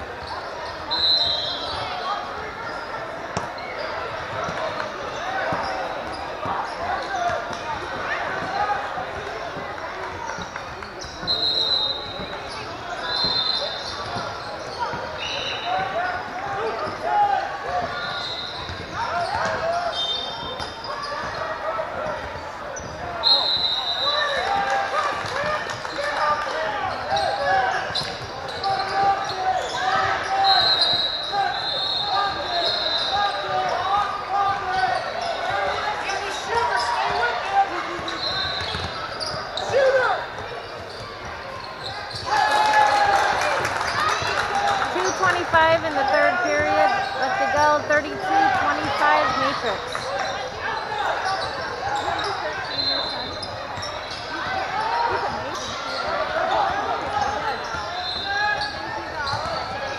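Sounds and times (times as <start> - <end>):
shoe squeaks on gym floor: 0.0 - 25.5, 26.2 - 42.4, 44.9 - 59.9
voices talking and calling out: 0.0 - 59.9
basketball bouncing: 37.9 - 39.5.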